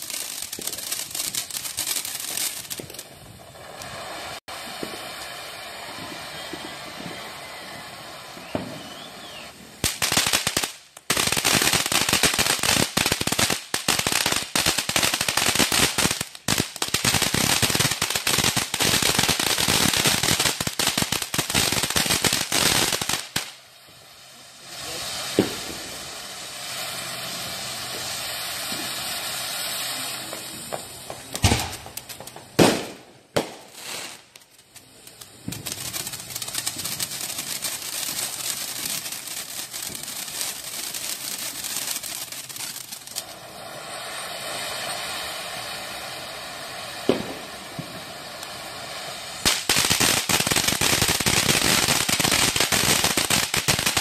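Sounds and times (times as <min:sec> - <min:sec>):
firework fountain hissing: 0:00.0 - 0:54.0
rapid firework crackling: 0:00.0 - 0:54.0
sharp firework bang: 0:24.9 - 0:26.0, 0:30.2 - 0:33.7, 0:47.1 - 0:47.9.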